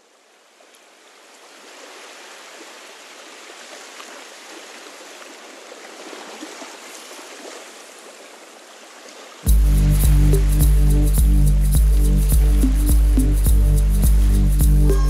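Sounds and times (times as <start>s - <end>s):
band with heavy bass and beat: 9.5s - 15.0s
rushing sea-like noise: 9.5s - 15.0s.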